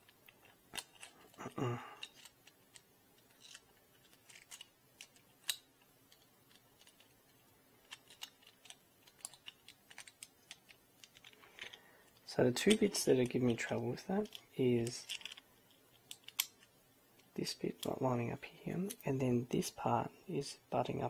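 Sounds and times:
plastic parts clicking: 0.0 - 1.4, 2.0 - 17.9.

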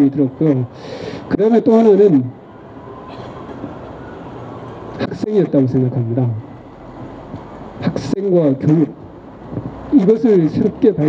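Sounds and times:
vehicle traffic rumble and hiss: 0.0 - 11.0.

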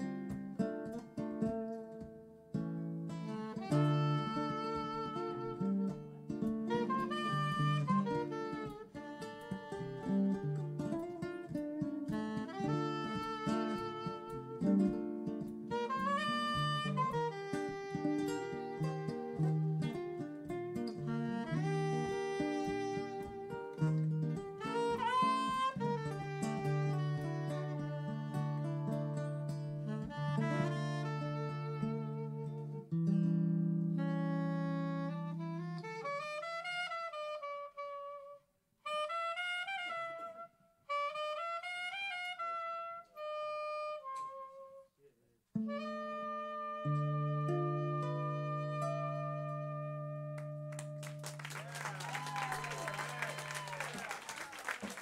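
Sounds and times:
jazzy saxophone melody: 0.0 - 55.0.

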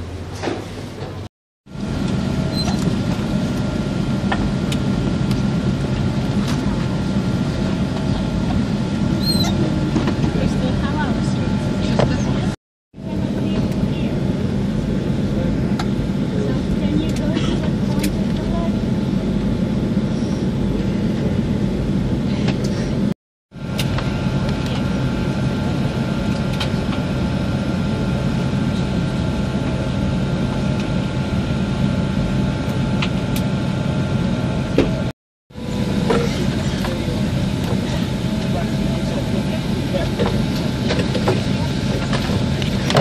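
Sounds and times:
airliner cabin drone: 0.0 - 43.0.

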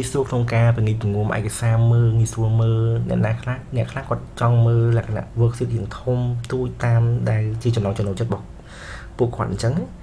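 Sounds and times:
man speaking in drawn-out syllables: 0.0 - 8.4.

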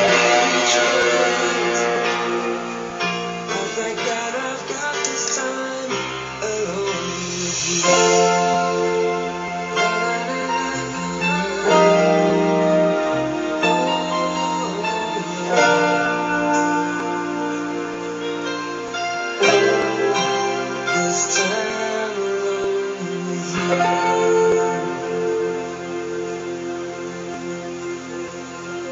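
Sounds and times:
backing track: 0.0 - 28.9
guitar chords ringing: 0.0 - 28.9.

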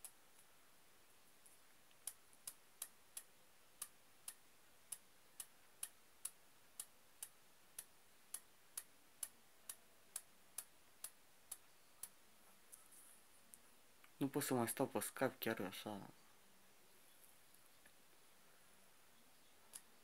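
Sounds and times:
faint even ticking: 0.0 - 14.2.

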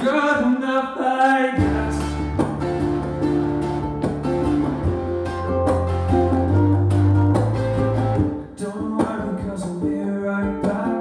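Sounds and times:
ukulele strumming: 1.2 - 11.0
low bass notes: 1.6 - 8.5.

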